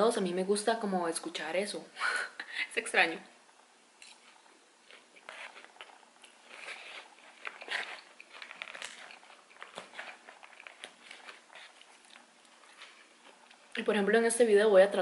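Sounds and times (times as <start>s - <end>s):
chewing crunchy salad: 4.0s - 13.8s.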